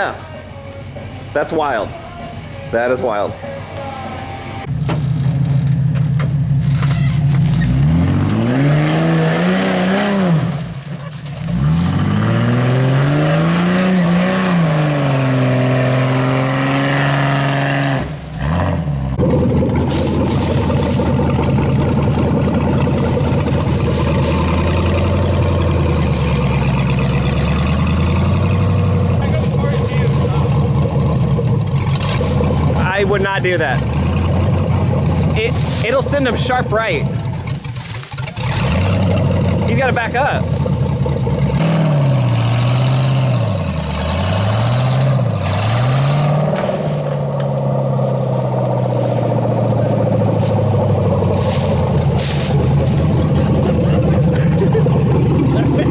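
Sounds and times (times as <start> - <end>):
off-road vehicle engine revving: 3.8 - 55.9.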